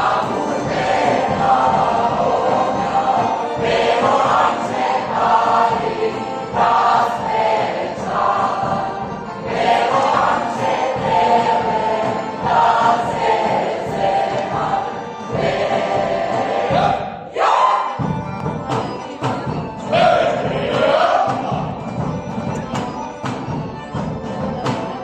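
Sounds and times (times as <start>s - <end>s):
group singing folk song: 0.0s - 25.0s.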